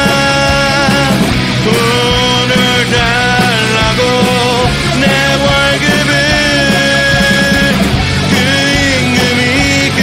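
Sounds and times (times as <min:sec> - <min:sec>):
rock band playing: 0:00.0 - 0:10.0.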